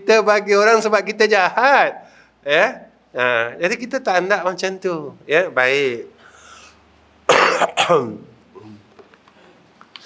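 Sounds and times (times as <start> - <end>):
man coughing: 7.3 - 8.8.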